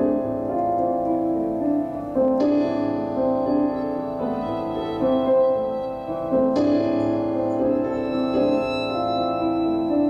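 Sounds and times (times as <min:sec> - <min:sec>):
keyboard playing piano chords: 0:00.0 - 0:10.0.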